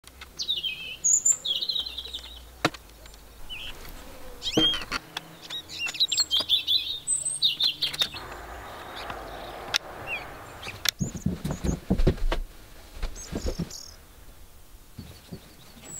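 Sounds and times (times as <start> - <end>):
songbirds chirping: 0.0 - 15.9
soft rustling hiss: 0.1 - 6.0, 7.8 - 15.9.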